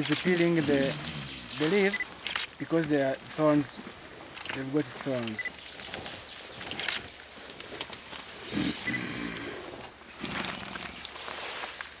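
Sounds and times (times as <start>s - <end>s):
leaves crackling and rustling: 0.0s - 12.0s
gorilla grunting: 0.6s - 2.0s, 8.4s - 11.0s.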